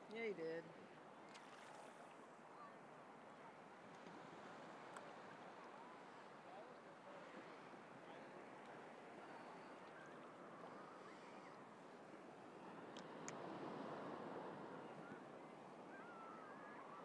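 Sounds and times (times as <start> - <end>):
shallow seawater washing: 0.8 - 6.5.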